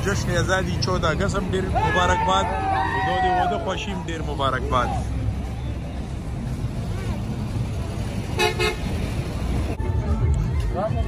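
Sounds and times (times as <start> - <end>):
road traffic rumble: 0.0 - 11.0
vehicle horn toot: 8.4 - 8.9.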